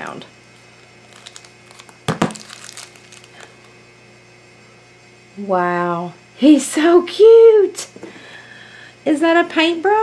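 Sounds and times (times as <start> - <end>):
plastic wrapper crinkling: 0.6 - 3.8
plastic wrapper clacks: 1.0 - 3.6.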